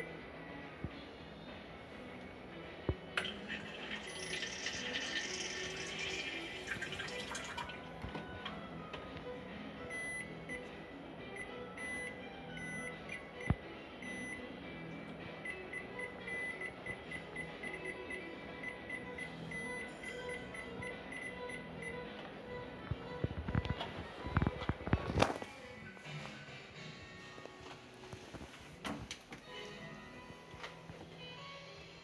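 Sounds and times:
background music: 0:00.0 - 0:32.0.

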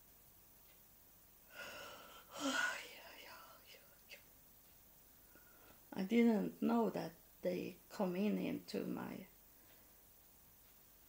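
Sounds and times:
faint clicks: 0:00.6 - 0:00.9
woman whispering: 0:02.1 - 0:04.2.

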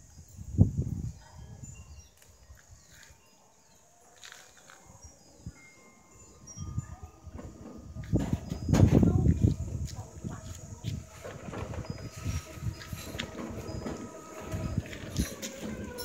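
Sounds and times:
wind gusts on microphone: 0:00.0 - 0:03.2, 0:04.8 - 0:16.0.

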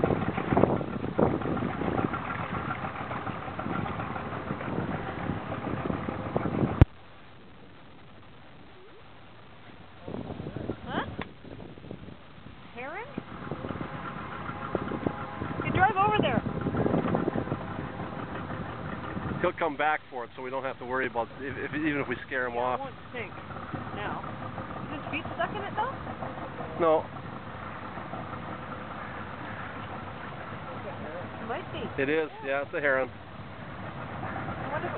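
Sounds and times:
boat motor idling: 0:00.0 - 0:34.9.

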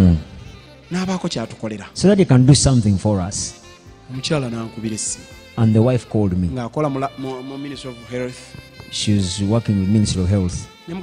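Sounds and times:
man speaking: 0:00.0 - 0:11.0
soft background music: 0:00.0 - 0:11.0
speech: 0:00.9 - 0:11.0.

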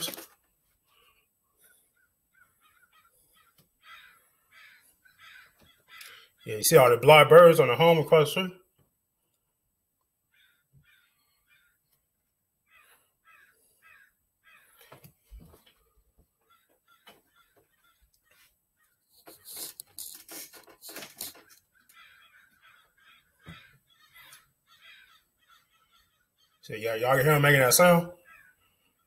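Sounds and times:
crows cawing: 0:02.0 - 0:06.5, 0:10.3 - 0:11.9, 0:12.6 - 0:15.0, 0:16.4 - 0:19.0, 0:21.4 - 0:26.6, 0:28.1 - 0:29.0.

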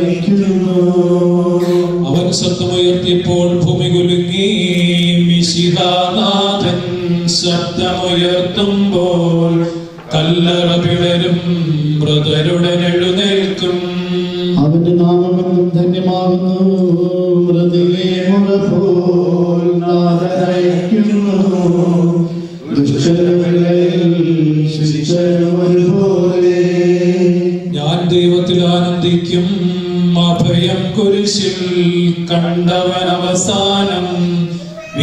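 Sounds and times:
person chanting slowly: 0:00.0 - 0:35.0.

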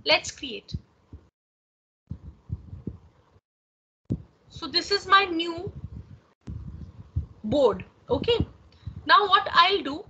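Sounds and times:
soft low thumps: 0:00.7 - 0:01.3, 0:02.1 - 0:03.2, 0:04.1 - 0:04.7, 0:05.3 - 0:09.3.

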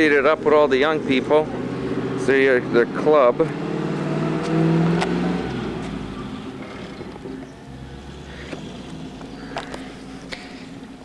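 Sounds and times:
faint outdoor background: 0:00.0 - 0:11.0
vehicle engine running: 0:00.0 - 0:11.0.

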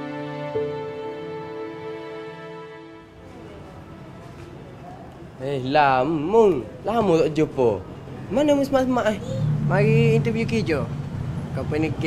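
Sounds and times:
faint distant voices: 0:03.0 - 0:12.0.

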